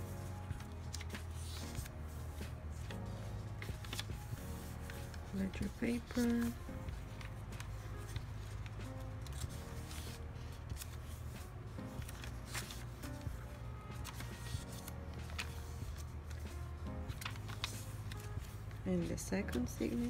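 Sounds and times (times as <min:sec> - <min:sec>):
paper pages rustling: 0:00.0 - 0:20.0
quiet background music: 0:00.0 - 0:20.0.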